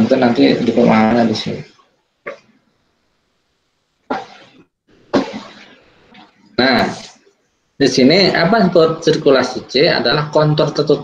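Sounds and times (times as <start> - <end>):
short cough: 4.1 - 5.8.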